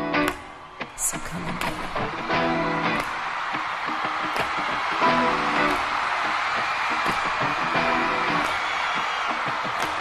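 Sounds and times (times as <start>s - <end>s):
audience noise: 0.0s - 10.0s.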